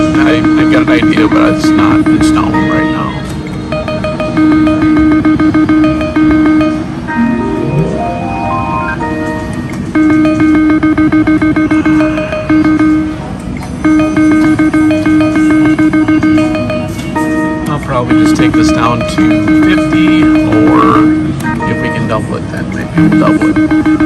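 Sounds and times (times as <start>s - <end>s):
rising run of tones: 0.0s - 22.3s
repeated electronic beeps: 0.0s - 24.0s.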